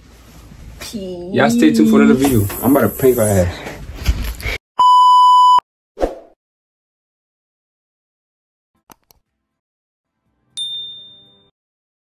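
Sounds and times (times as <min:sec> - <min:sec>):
bright bell ding: 0:10.6 - 0:11.5.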